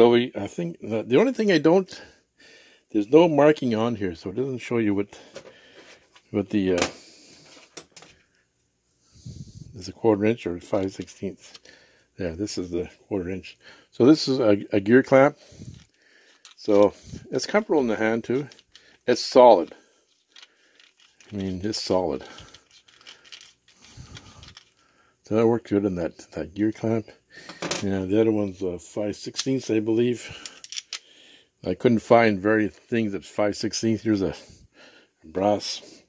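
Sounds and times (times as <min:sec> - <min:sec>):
tool handling rustle: 0:15.2 - 0:24.8, 0:29.3 - 0:31.1.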